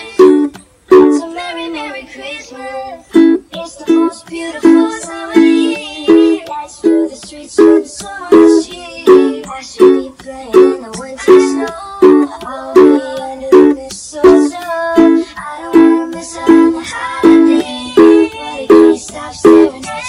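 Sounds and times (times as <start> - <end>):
ukulele strumming: 0.0 - 2.0, 2.6 - 20.0.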